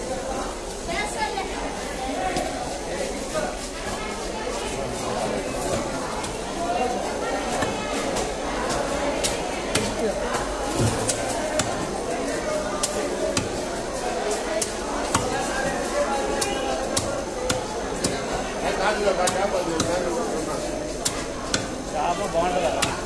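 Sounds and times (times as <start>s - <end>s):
knife chopping fish: 16.4s - 18.4s, 21.0s - 21.8s, 22.8s - 23.0s.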